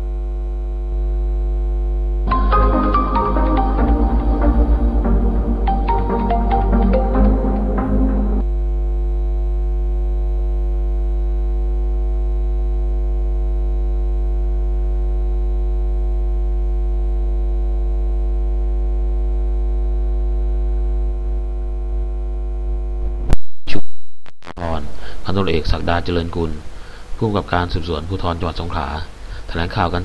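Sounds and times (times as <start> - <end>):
electrical mains hum: 0.0 - 23.6, 24.2 - 30.0.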